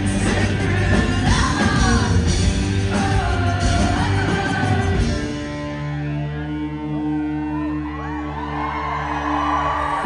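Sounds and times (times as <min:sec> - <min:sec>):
woman singing: 0:00.0 - 0:05.4
electric guitar: 0:00.0 - 0:10.0
live rock band playing: 0:00.0 - 0:10.0.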